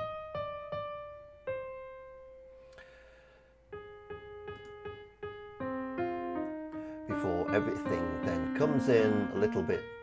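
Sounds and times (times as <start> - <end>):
piano playing: 0.0 - 10.0.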